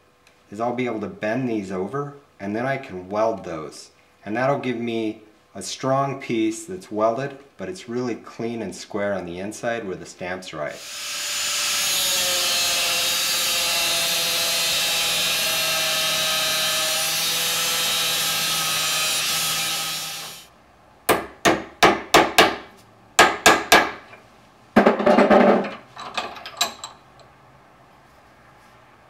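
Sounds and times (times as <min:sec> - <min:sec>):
angle grinder cutting steel: 0:10.8 - 0:20.5
metal clatter: 0:24.8 - 0:27.2.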